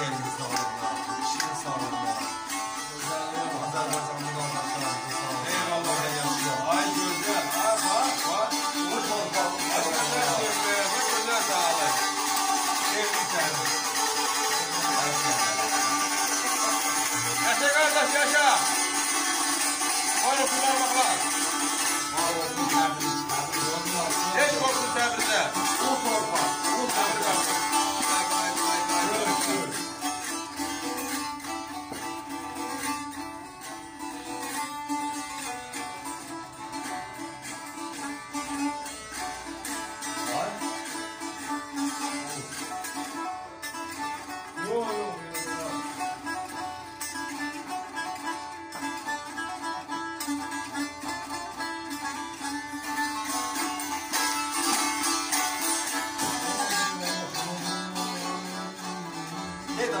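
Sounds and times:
lute strummed fast: 0.0 - 60.0.

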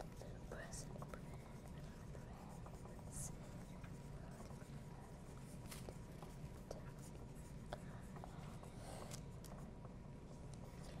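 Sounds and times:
pencils scratching on paper: 0.0 - 9.8.

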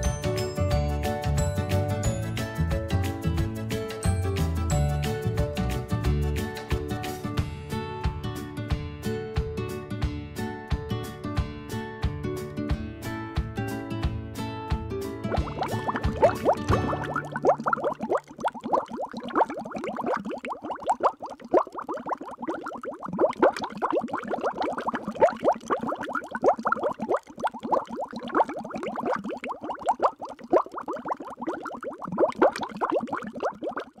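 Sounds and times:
water bubbling: 15.3 - 34.0.

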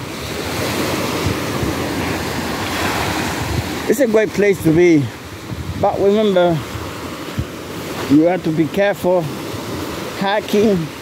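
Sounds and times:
ocean surf breaking on beach: 0.0 - 11.0.

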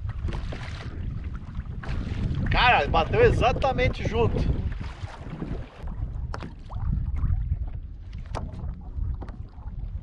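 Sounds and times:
knocks and splashes: 0.0 - 10.0
water lapping against kayak hull: 0.0 - 10.0
wind rumbling on microphone: 0.0 - 10.0.

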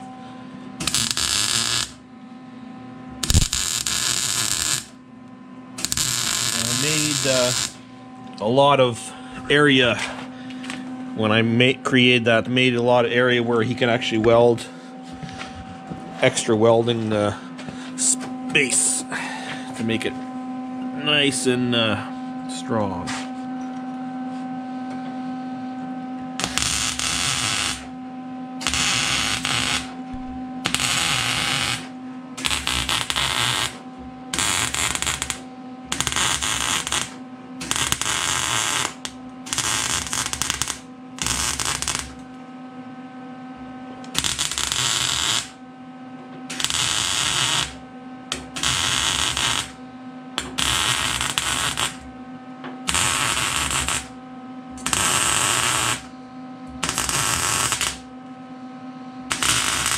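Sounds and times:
steady electrical hum: 0.0 - 59.9
welder arc crackling: 0.8 - 2.0, 3.2 - 5.0, 5.8 - 7.8, 26.4 - 27.9, 28.6 - 30.0, 30.6 - 42.3, 44.1 - 45.6, 46.5 - 49.8, 50.4 - 52.1, 52.9 - 54.2, 54.8 - 56.1, 56.8 - 58.1, 59.3 - 59.9.

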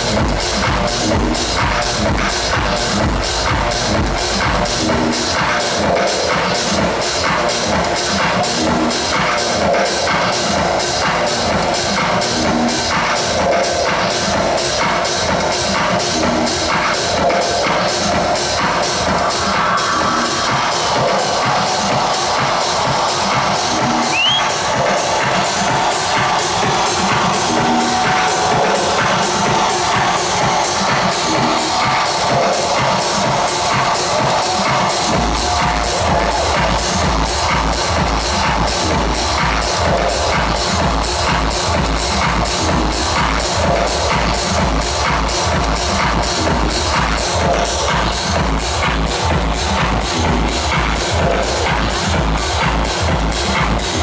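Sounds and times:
loud techno over sound system: 0.0 - 54.0.

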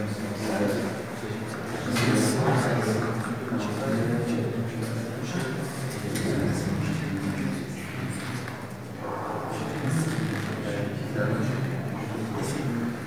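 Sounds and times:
indistinct chatter: 0.0 - 13.0.

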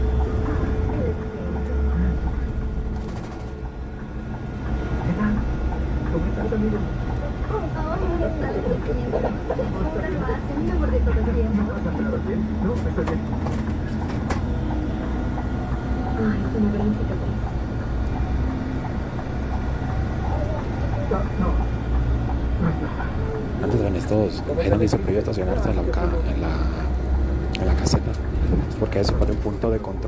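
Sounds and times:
bus engine drone: 0.0 - 30.0
faint voices: 5.0 - 30.0.

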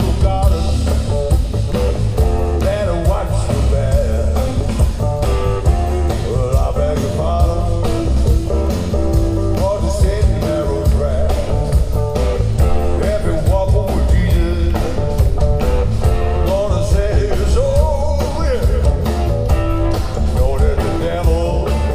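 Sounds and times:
bass guitar: 0.0 - 21.9
electric guitar melodic line: 0.0 - 21.9
steady drum beat: 0.0 - 21.9.

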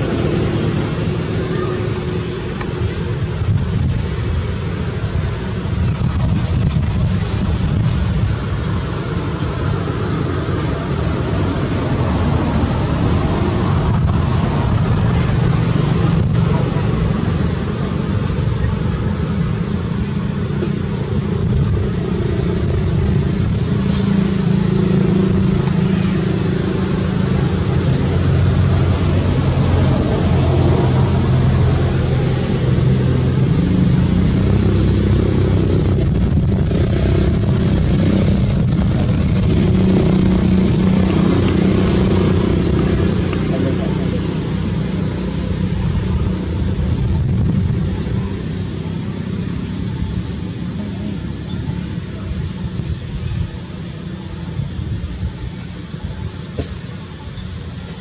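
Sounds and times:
motor engine humming: 0.0 - 58.0.

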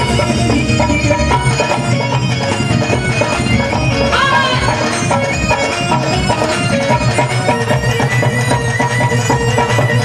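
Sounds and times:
reedy wind instrument melody: 0.0 - 10.0
steady musical accompaniment: 0.0 - 10.0.

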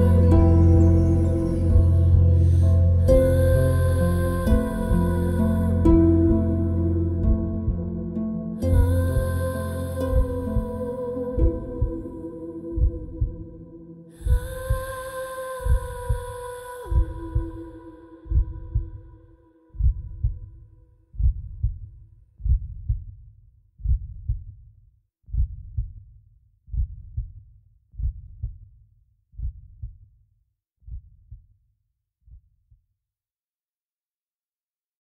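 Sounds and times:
held musical tones: 0.0 - 13.8
slow heartbeat: 0.0 - 24.6, 25.3 - 28.8, 29.4 - 30.1, 30.8 - 31.5, 32.3 - 32.8.

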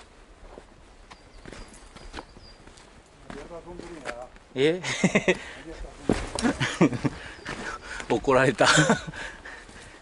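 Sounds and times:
footsteps on rocky trail: 0.0 - 4.5, 5.2 - 10.0.

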